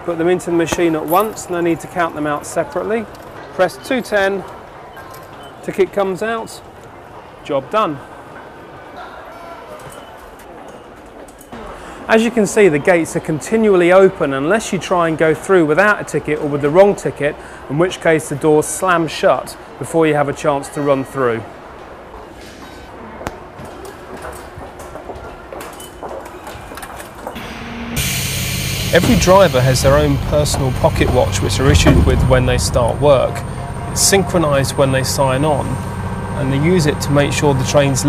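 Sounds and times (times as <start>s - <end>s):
station background noise: 26.8s - 38.0s
bright hiss: 28.0s - 31.6s
gate flap doors clacking shut: 29.0s - 35.3s.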